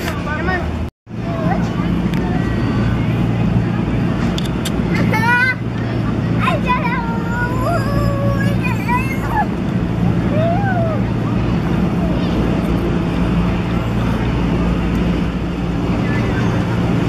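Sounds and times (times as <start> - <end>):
children shouting: 6.4 - 9.6.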